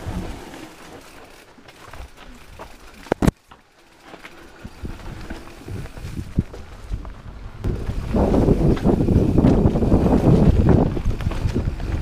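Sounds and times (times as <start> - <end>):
bike knocks and rattles: 0.0 - 12.0
bike tyres rolling over dirt: 0.0 - 12.0.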